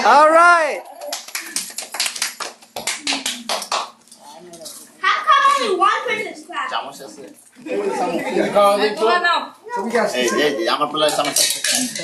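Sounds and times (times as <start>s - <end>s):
people clapping: 0.7s - 4.0s.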